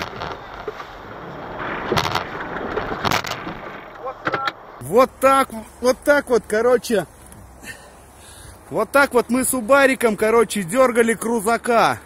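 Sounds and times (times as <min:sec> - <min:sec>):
vehicle engines under load: 0:00.0 - 0:12.0.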